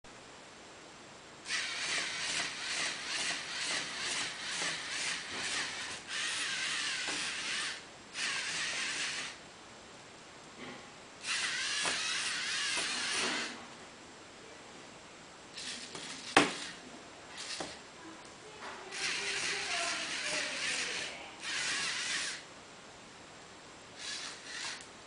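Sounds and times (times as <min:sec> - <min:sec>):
servo motors whirring: 0:01.5 - 0:09.4, 0:11.2 - 0:13.6, 0:15.6 - 0:17.8, 0:18.9 - 0:22.4, 0:24.0 - 0:24.9.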